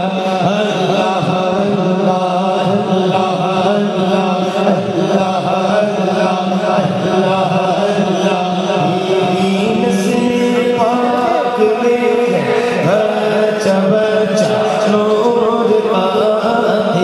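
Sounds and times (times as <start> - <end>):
man chanting into microphone: 0.0 - 17.0.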